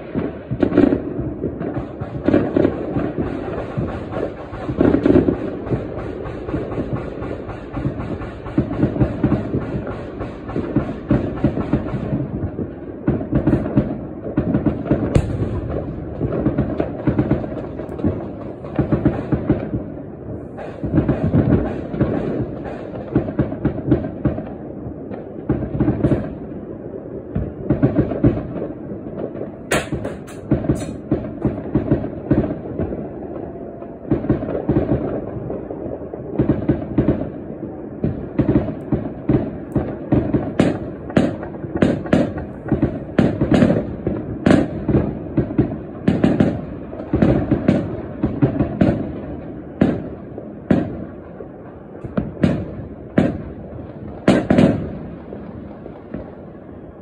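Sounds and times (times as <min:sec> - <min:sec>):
fireworks and firecrackers banging: 0:00.0 - 0:57.0.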